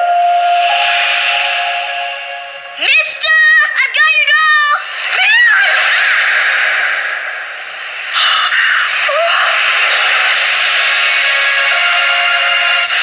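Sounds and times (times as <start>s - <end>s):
loud rushing noise: 0.0s - 13.0s.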